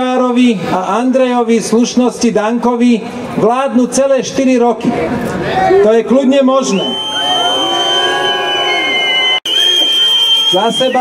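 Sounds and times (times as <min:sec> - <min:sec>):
crowd whistling: 0:06.6 - 0:11.0.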